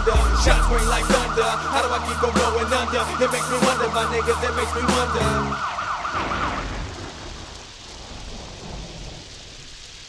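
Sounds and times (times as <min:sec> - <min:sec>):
rain hissing: 0:00.0 - 0:10.0
thunder rumbling: 0:00.0 - 0:10.0.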